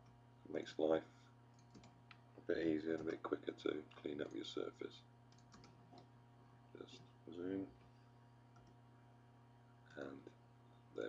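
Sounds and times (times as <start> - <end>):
steady low hum: 0.0 - 11.0
computer mouse click: 1.5 - 2.2, 5.3 - 6.1, 8.5 - 8.8.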